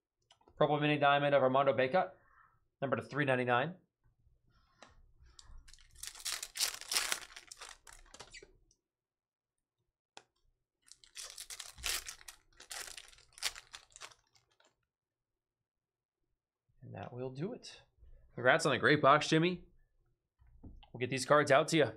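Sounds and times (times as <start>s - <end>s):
cards rustling and clicking: 5.5s - 8.4s, 10.9s - 14.7s.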